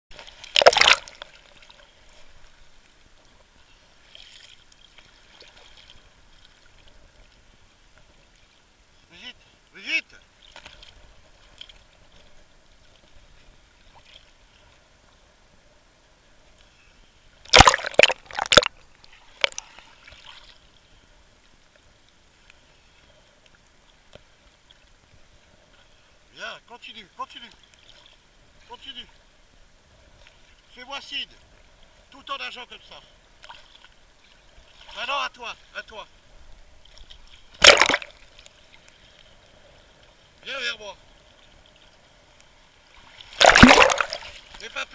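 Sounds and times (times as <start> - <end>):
water splashes: 0.1 - 14.8, 17.4 - 20.7, 30.1 - 44.9.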